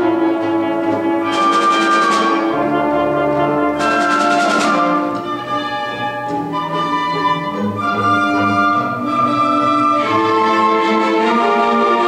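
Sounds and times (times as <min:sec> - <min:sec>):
orchestra playing held chords: 0:00.0 - 0:12.0.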